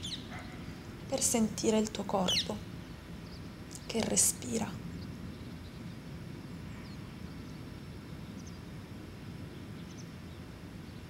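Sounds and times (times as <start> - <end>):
bird chirps: 0.0 - 0.7, 2.2 - 2.6
low outdoor rumble: 0.0 - 11.0.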